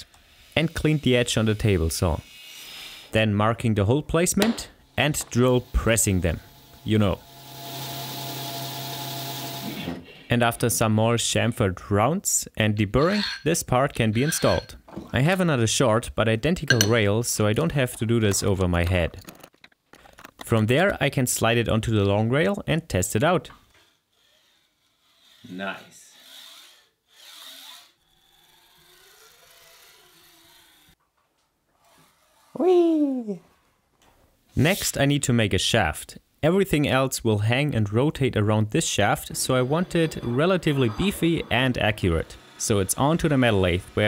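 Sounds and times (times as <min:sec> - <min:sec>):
drill press cutting metal: 0:39.0 - 0:44.0.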